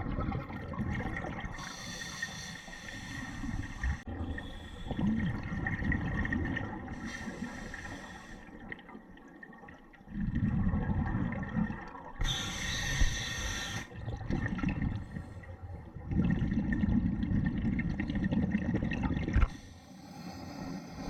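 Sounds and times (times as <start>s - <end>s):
regulator hiss inhale: 1.6s - 5.0s, 7.0s - 8.6s, 12.2s - 13.9s, 19.5s - 21.0s
regulator bubbling exhale: 10.0s - 21.0s.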